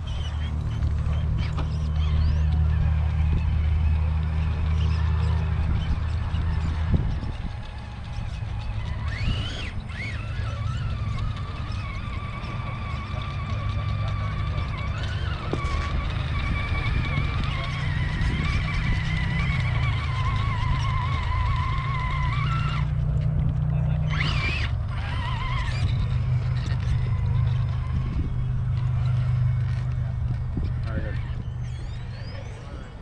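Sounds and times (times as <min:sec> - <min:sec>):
electric motor whining: 0:00.0 - 0:33.0.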